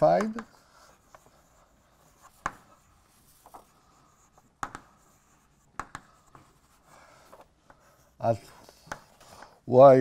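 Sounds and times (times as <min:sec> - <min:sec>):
chalk tapping on blackboard: 0:00.0 - 0:07.0, 0:08.5 - 0:09.5
chalk scratching on blackboard: 0:00.0 - 0:09.6.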